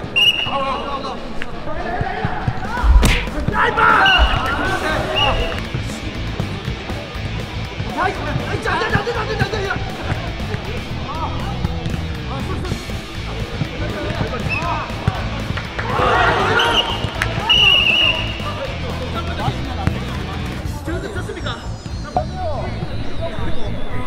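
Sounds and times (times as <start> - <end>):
players shouting: 0.1 - 6.2, 13.2 - 19.7
background music: 1.2 - 24.0
ball kicked and bouncing on dirt: 2.0 - 3.6.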